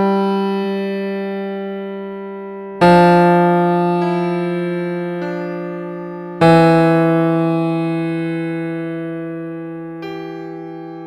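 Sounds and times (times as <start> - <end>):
synthesized piano bass notes: 0.0 - 11.0.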